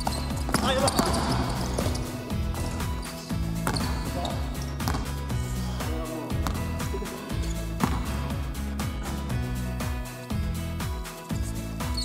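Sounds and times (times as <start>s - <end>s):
basketball dribbling on hardwood: 0.0s - 2.9s, 3.5s - 5.3s, 6.4s - 6.8s, 7.7s - 8.2s
background music with bass line: 0.0s - 12.0s.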